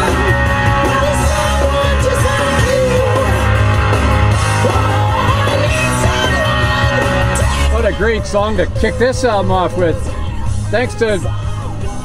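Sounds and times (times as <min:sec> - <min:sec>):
rock song with guitar and singing: 0:00.0 - 0:12.0.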